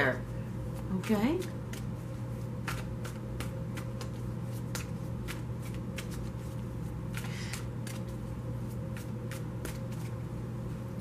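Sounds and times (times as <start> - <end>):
steady low hum: 0.0 - 11.0
cards being shuffled: 2.6 - 10.2.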